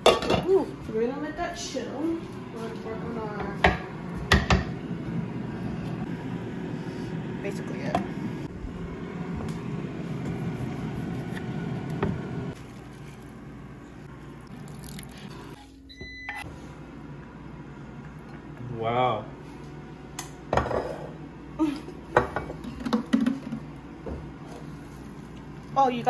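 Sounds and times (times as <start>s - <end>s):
steady hum: 0.0s - 26.0s.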